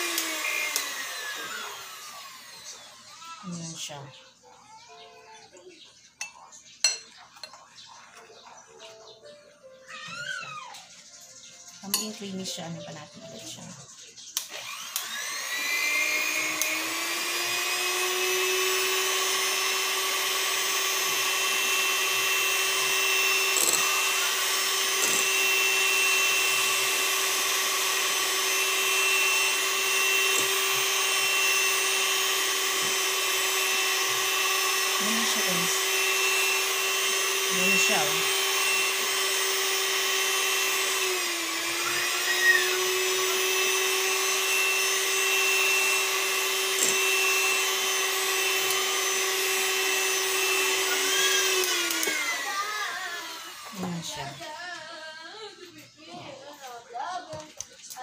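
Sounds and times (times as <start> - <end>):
electric hand mixer whine: 0.0 - 4.2, 9.8 - 11.2, 14.4 - 56.3.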